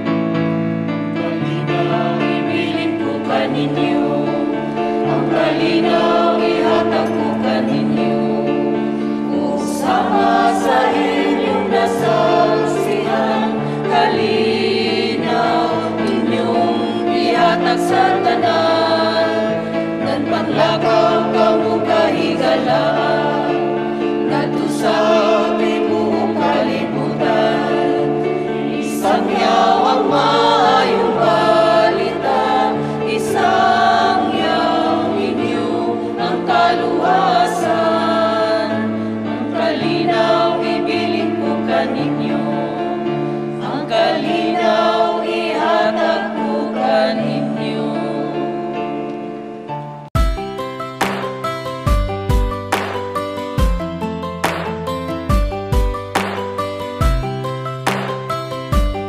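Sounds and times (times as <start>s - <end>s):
choir singing a hymn: 0.0s - 52.9s
sustained instrumental chords: 48.7s - 59.0s
organ accompaniment: 49.1s - 59.0s.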